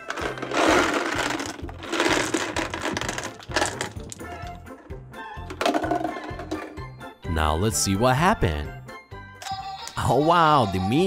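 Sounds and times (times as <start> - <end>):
small balls clattering onto carpet: 0.0 - 4.5
background music with steady beat: 0.0 - 11.0.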